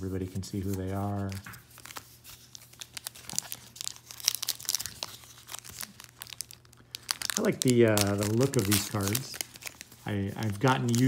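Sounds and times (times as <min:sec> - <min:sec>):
wrapper crinkling and tearing: 0:00.5 - 0:11.0.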